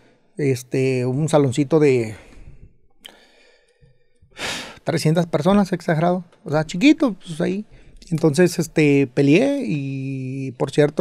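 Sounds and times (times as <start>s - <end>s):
man breathing in close to microphone: 2.2s - 4.8s.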